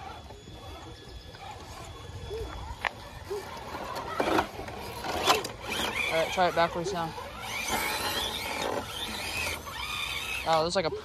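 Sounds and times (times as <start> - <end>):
electric motors whining: 0.0 - 11.0.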